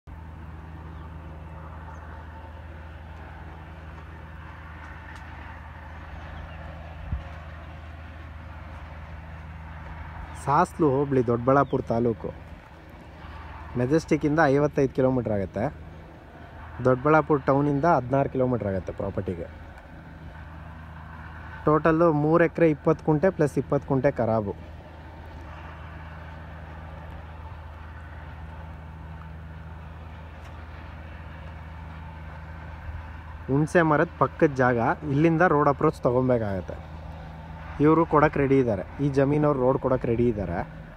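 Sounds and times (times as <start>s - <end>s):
road and wind noise: 0.0s - 40.9s
motorcycle engine running: 0.1s - 40.9s.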